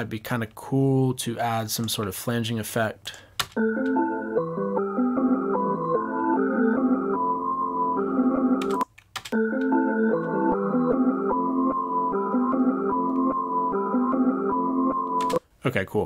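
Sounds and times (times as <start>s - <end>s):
chopped trap melody loop: 9.4s - 15.4s.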